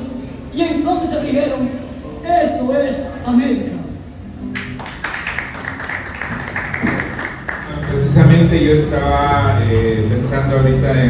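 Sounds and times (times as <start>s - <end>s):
audience applauding: 4.6s - 8.4s.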